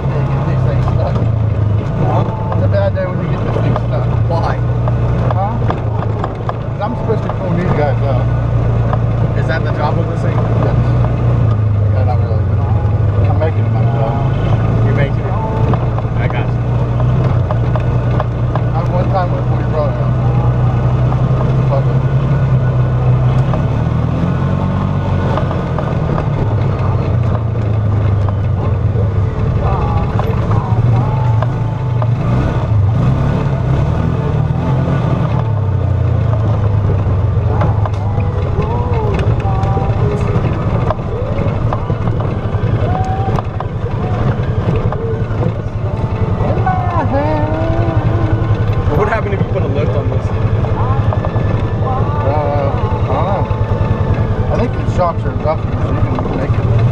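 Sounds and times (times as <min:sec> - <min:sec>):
rattles over bumps: 0:00.0 - 0:56.9
vehicle engine running: 0:00.0 - 0:56.9.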